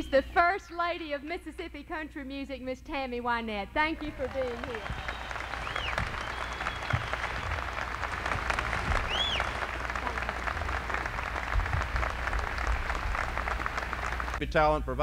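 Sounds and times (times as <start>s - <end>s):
audience applauding: 3.8s - 14.4s
rising and falling whistles: 4.8s - 7.8s, 8.8s - 9.7s.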